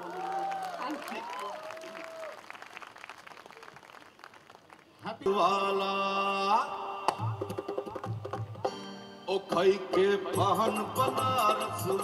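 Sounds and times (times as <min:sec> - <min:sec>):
audience applause: 0:00.0 - 0:05.0.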